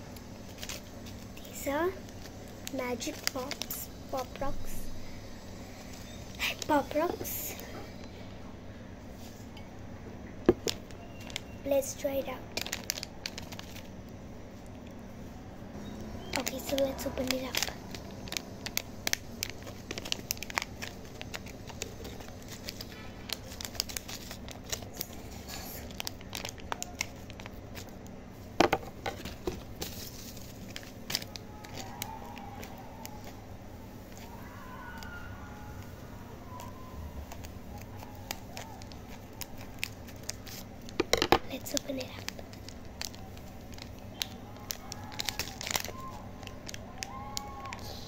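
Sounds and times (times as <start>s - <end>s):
plastic foil packet crinkling: 0.0s - 8.1s, 10.5s - 14.9s, 15.8s - 48.0s.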